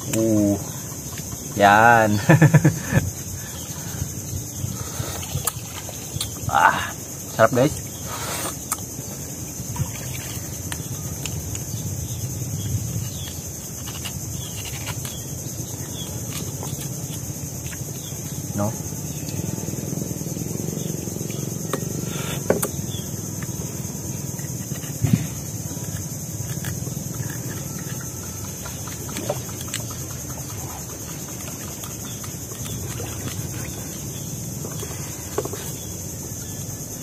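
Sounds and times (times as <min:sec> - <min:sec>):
insect chorus: 0:00.0 - 0:37.0.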